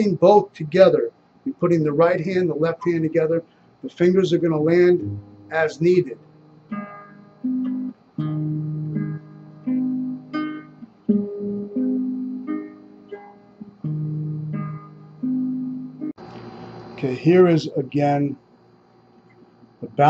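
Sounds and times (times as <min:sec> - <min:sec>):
classical guitar fingerstyle: 0:05.0 - 0:05.6, 0:06.2 - 0:16.1.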